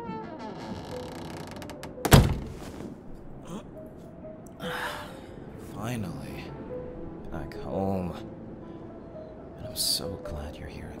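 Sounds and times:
soft background music: 0.0 - 11.0
rustling knock: 2.0 - 3.0
loud sharp thunk: 2.1 - 2.7.

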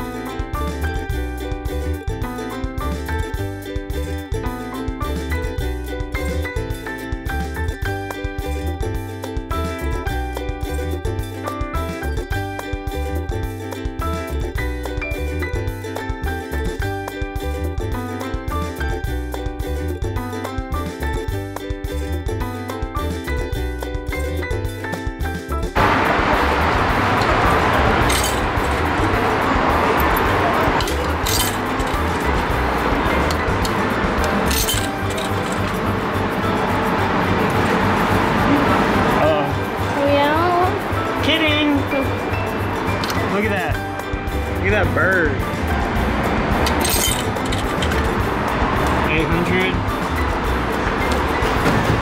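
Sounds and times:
background music: 0.0 - 52.0
coins clinking into machine: 28.0 - 28.8, 30.1 - 32.4, 33.3 - 35.9, 46.6 - 48.1.

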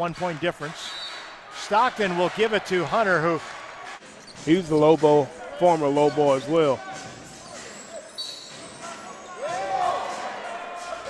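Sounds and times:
voices in arena: 0.0 - 11.0
sneaker squeaks: 4.0 - 9.3.

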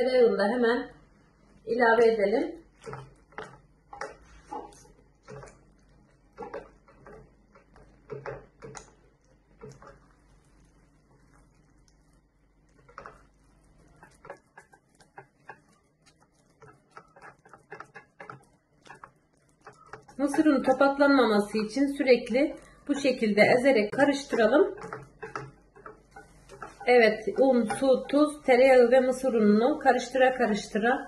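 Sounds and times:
spatula scraping and knocking pan: 2.1 - 11.7, 12.7 - 30.8.

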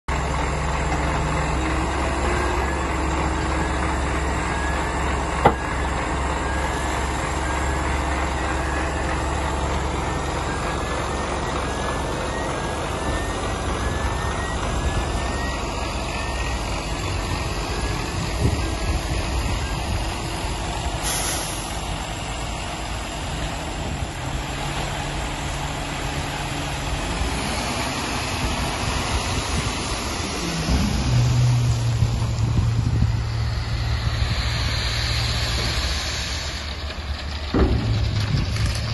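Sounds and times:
asphalt load sliding out: 0.1 - 38.9
diesel lorry engine running: 0.1 - 38.9
short sharp air hiss: 21.0 - 21.8.

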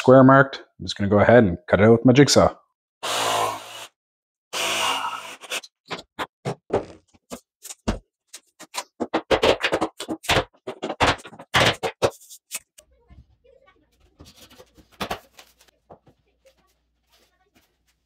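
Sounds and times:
jigsaw cutting: 3.0 - 3.9, 4.5 - 5.7.

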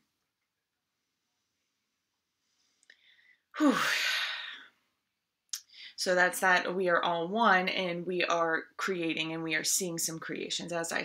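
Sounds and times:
person sighing: 3.6 - 4.8.

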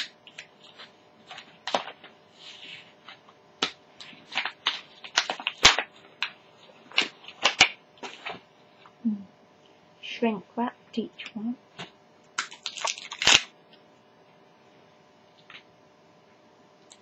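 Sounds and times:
plastic packaging crackling: 0.0 - 2.2, 2.9 - 8.4, 12.4 - 13.5.

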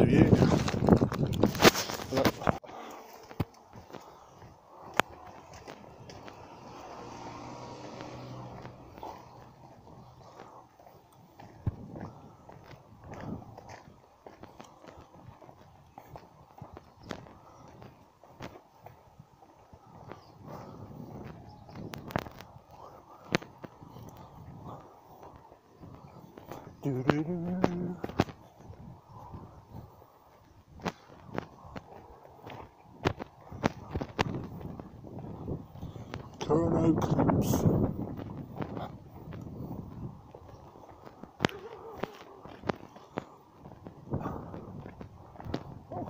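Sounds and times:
footsteps on pavement: 0.0 - 46.0.

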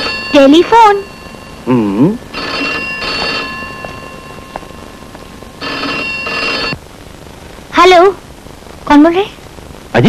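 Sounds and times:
desk telephone ringing: 0.0 - 6.8.

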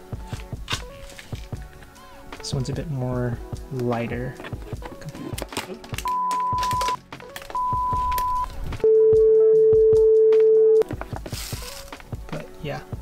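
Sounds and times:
background music with a beat: 0.0 - 13.0
electronic beeps: 6.1 - 7.0, 7.6 - 10.8.

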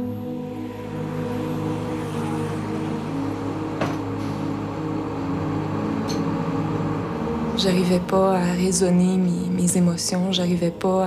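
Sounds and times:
traffic noise: 0.0 - 10.7
ambient music: 0.0 - 11.0
bus engine running: 0.8 - 8.6.

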